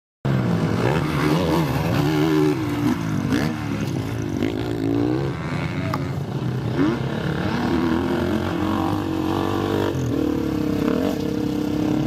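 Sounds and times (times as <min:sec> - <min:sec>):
motorcycle engine revving: 0:00.3 - 0:12.0.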